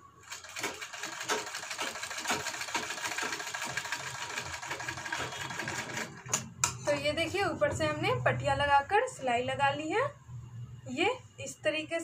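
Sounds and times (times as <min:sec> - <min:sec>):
sewing machine clattering: 0:00.2 - 0:06.5.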